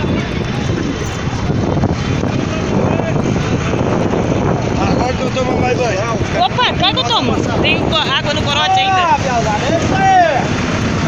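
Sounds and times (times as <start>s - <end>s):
people's voices: 0.0s - 11.0s
tractor engines droning: 0.0s - 11.0s.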